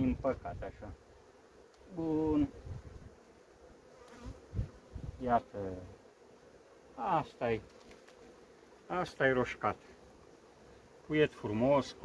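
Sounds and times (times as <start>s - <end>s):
honeybees humming: 0.0s - 12.0s.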